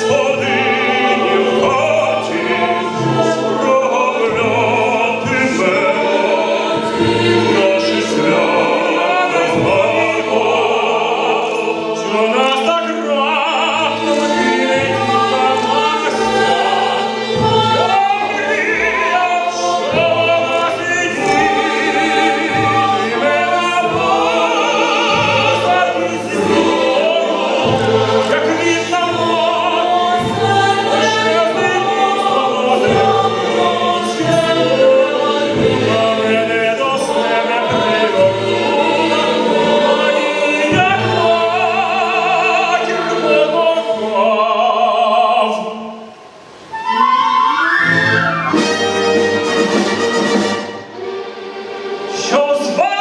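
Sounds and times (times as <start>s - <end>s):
male soloists singing: 0.0s - 46.1s, 52.1s - 53.0s
choir singing operatic style: 0.0s - 53.0s
symphony orchestra: 0.0s - 53.0s.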